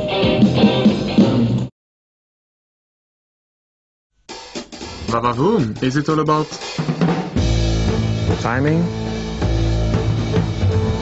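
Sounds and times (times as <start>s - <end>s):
music with drum kit: 0.0s - 1.7s, 4.2s - 11.0s.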